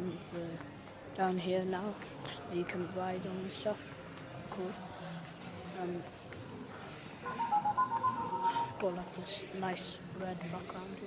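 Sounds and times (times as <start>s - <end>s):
electronic beeping jingle: 7.3s - 9.2s.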